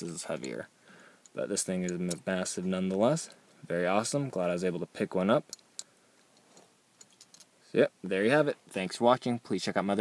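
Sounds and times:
man speaking: 0:00.0 - 0:00.7, 0:01.4 - 0:05.5, 0:07.7 - 0:10.0.

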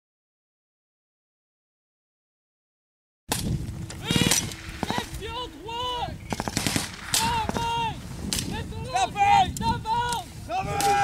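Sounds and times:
man shouting: 0:04.0 - 0:06.2, 0:07.2 - 0:08.0, 0:08.6 - 0:11.0
small-arms gunfire: 0:04.1 - 0:05.2, 0:06.3 - 0:07.7.

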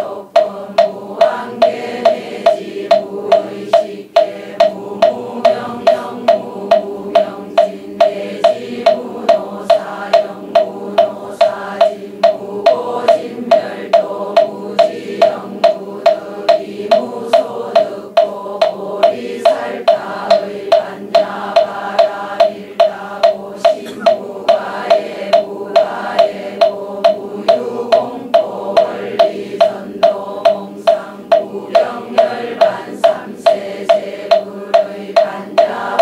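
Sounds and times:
congregation chanting in unison: 0:00.0 - 0:36.0
wooden fish struck in even beat: 0:00.0 - 0:36.0.

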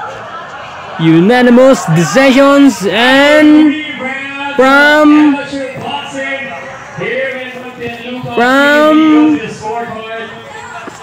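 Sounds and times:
announcer calling out: 0:01.0 - 0:10.5.

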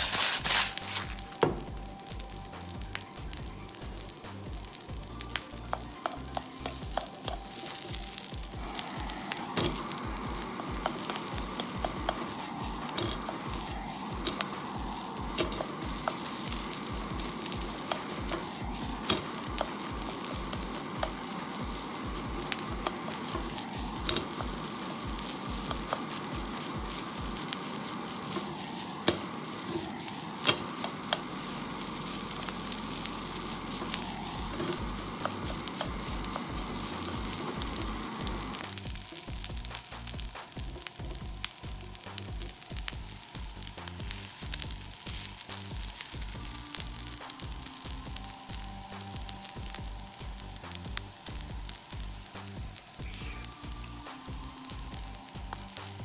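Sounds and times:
rice sizzling in a frying pan: 0:00.0 - 0:56.0.

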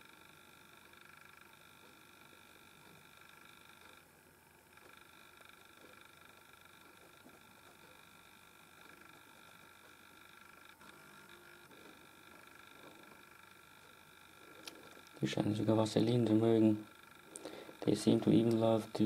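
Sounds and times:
faint high-pitched hum: 0:00.0 - 0:19.0.

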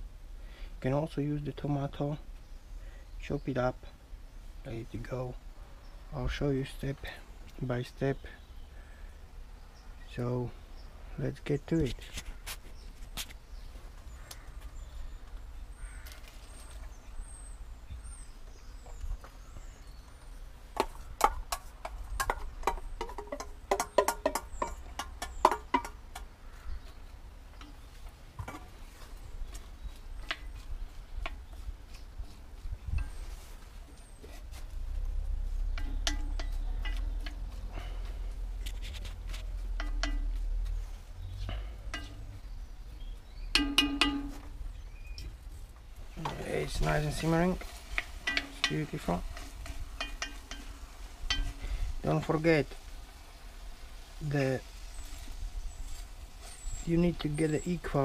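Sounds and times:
birds chirping: 0:00.0 - 0:58.0
spoon knocking on pot: 0:21.2 - 0:26.3, 0:35.8 - 0:37.4, 0:39.7 - 0:40.4, 0:43.5 - 0:44.5, 0:48.0 - 0:51.6
metal clinks and scrapes: 0:35.4 - 0:42.4, 0:46.5 - 0:52.3.

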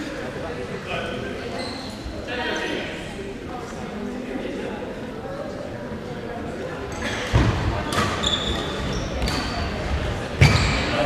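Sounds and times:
sports hall noise: 0:00.0 - 0:11.0.

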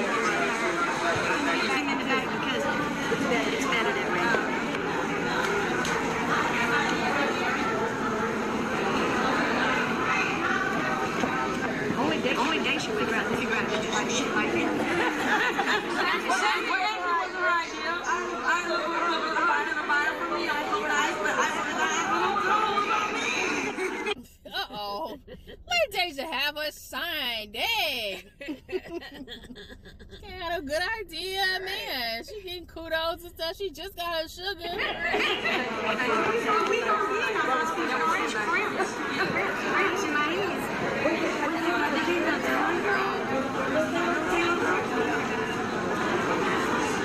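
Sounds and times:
overlapping chatter of people: 0:00.0 - 0:47.0
people talking: 0:00.0 - 0:47.0.

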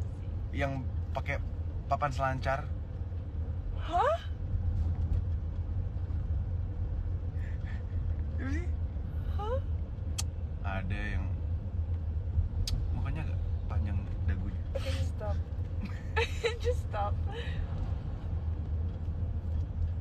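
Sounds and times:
voices: 0:16.2 - 0:17.6.

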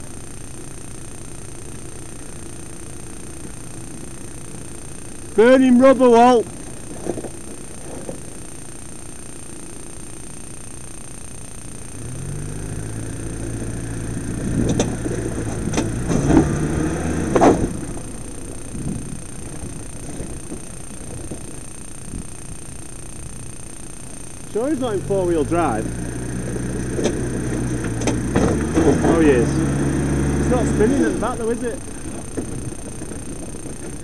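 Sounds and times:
engine revving: 0:11.9 - 0:20.5, 0:24.6 - 0:34.0.

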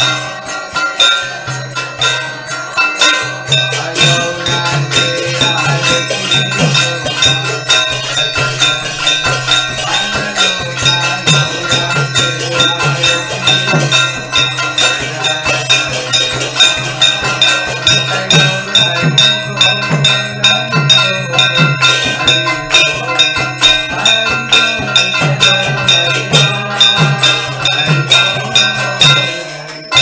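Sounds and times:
bells ringing: 0:00.0 - 0:30.0
brass hand cymbals ringing: 0:00.0 - 0:30.0.

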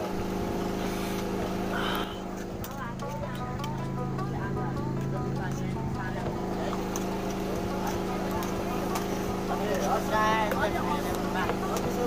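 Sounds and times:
steady low hum: 0:00.0 - 0:12.0
people talking indistinctly: 0:01.8 - 0:12.0.

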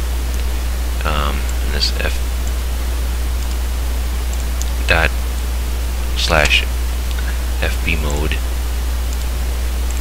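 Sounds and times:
low electrical hum: 0:00.0 - 0:10.0
microphone hiss: 0:00.0 - 0:10.0.

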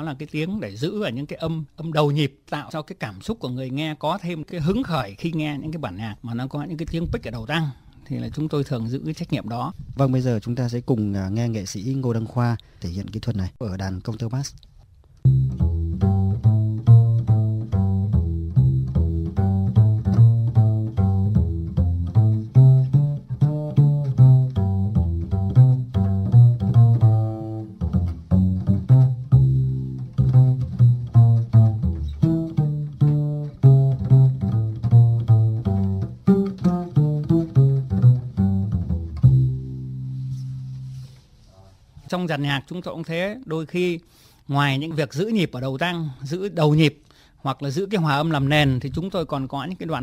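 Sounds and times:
double bass plucked notes: 0:15.2 - 0:41.2.

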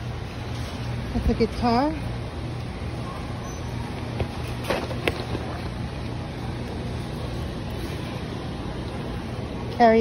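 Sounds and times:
store interior hum and hiss: 0:00.0 - 0:10.0.

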